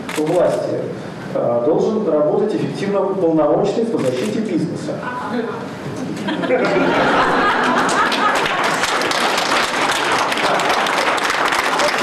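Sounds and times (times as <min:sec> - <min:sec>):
audience applauding: 0:07.0 - 0:12.0.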